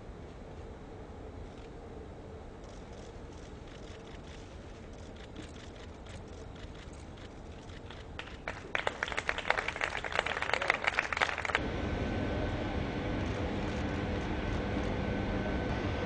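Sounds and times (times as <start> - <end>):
steady industrial hum: 0.0 - 16.0
group clapping: 8.1 - 11.6.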